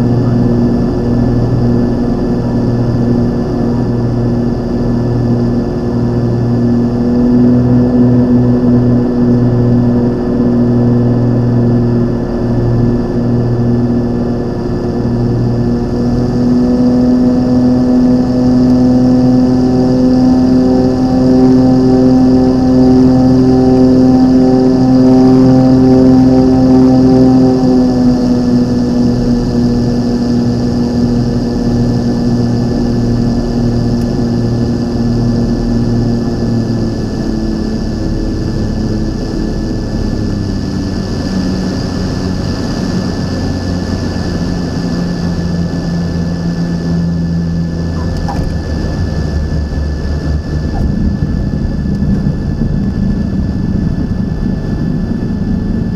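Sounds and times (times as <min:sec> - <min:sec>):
light aircraft engine and propeller: 0:00.0 - 0:55.9.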